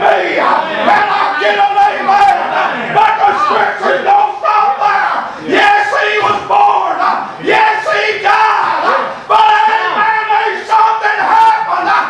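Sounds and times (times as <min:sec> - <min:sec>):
man preaching in chanted delivery: 0:00.0 - 0:12.0.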